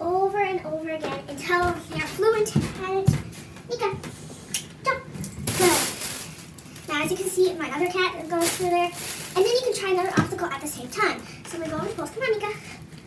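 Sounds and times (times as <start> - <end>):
young voice talking: 0.0 - 4.1, 4.8 - 6.1, 6.9 - 12.8.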